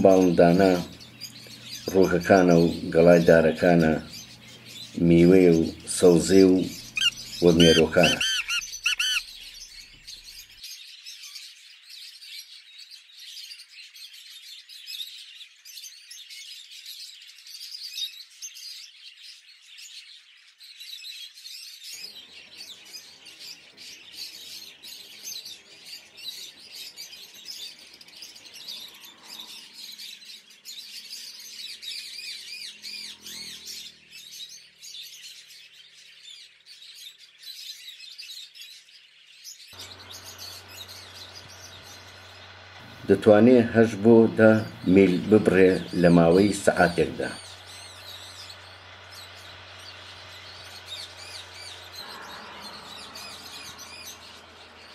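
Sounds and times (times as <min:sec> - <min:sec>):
small birds chirping: 0:00.0 - 0:54.9
faint low hum: 0:39.8 - 0:54.9.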